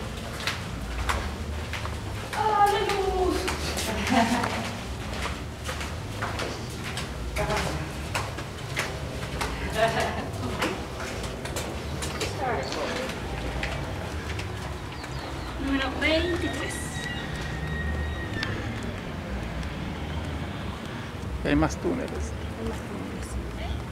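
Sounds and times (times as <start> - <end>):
footsteps on stone: 0.0 - 23.9
indistinct voices: 2.2 - 23.9.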